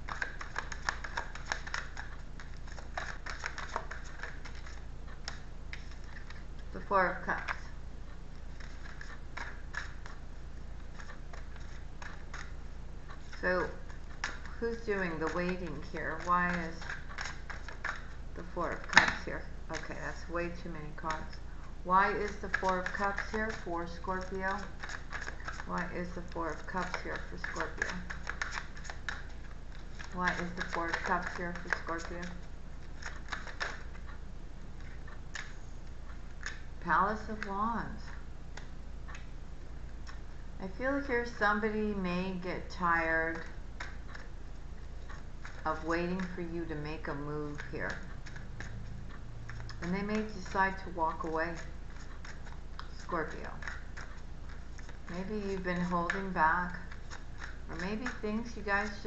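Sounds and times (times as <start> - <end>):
cards being shuffled: 0.0 - 7.7, 8.3 - 39.3, 44.9 - 59.0
low steady hum: 0.0 - 59.0.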